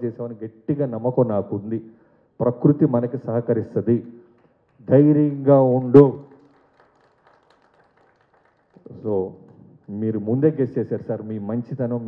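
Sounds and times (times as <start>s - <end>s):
man speaking: 0.0s - 4.1s, 4.8s - 6.3s, 8.9s - 12.0s.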